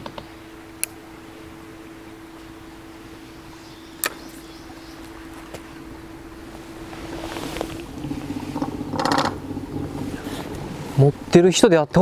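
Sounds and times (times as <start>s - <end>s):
electric boat motor humming: 0.0s - 12.0s.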